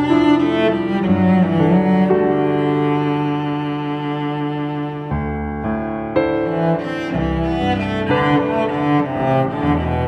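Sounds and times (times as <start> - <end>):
cellos playing slow piece: 0.0 - 10.0.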